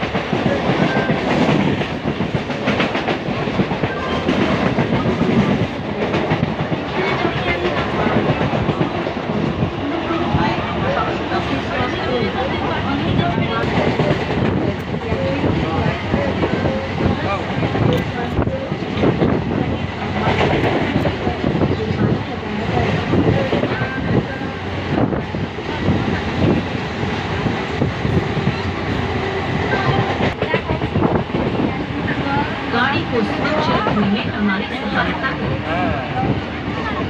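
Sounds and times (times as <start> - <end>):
train rumble: 0.0 - 37.0.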